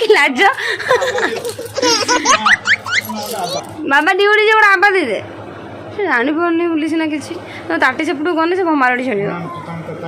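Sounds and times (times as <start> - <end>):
people laughing: 0.8 - 3.7.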